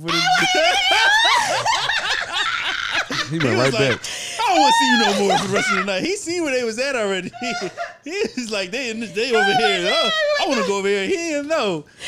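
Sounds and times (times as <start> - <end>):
woman laughing loudly: 0.2 - 5.9, 7.3 - 8.2, 8.9 - 10.8.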